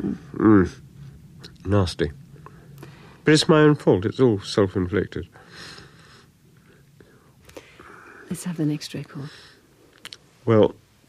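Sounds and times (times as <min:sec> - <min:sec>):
soft mouth clicks: 0:09.9 - 0:10.2.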